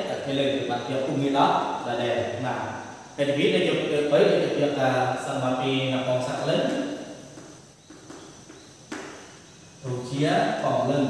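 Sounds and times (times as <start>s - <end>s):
chalk tap: 7.3s - 9.3s.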